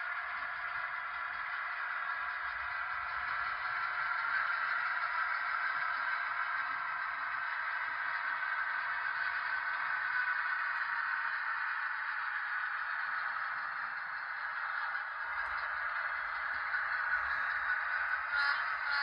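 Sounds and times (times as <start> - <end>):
model locomotive motor drone: 0.0 - 19.0.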